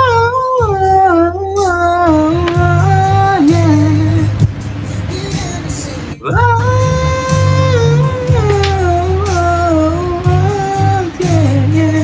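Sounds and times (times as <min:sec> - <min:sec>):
steady bass line: 0:01.4 - 0:12.0.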